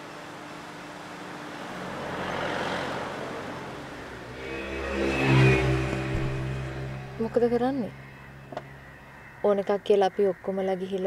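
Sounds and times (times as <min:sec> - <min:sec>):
car engine hum: 0:00.0 - 0:09.4.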